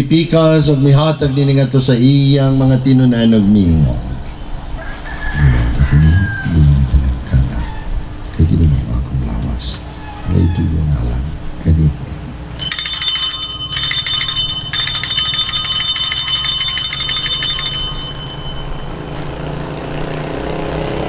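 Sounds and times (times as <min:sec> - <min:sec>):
altar bells jingling: 0:12.6 - 0:19.5, 0:20.8 - 0:21.0.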